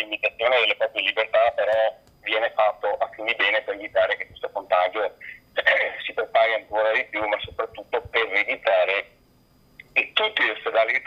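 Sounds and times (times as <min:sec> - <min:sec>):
man speaking: 0:00.0 - 0:09.2, 0:09.9 - 0:11.0.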